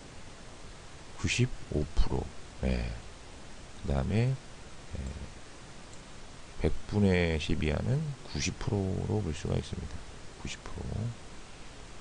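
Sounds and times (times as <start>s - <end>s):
low steady hum: 0.0s - 12.0s
man speaking: 1.2s - 3.0s, 6.6s - 11.2s.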